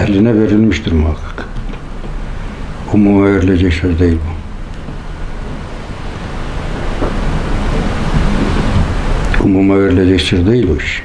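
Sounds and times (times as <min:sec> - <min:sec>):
loud rushing noise with rumble: 0:04.4 - 0:09.8.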